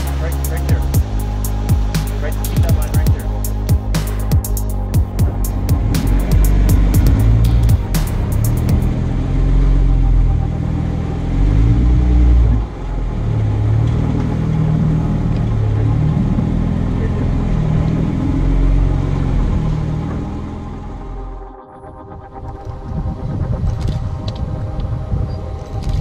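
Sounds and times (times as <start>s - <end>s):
engine running under load: 0.0s - 26.0s.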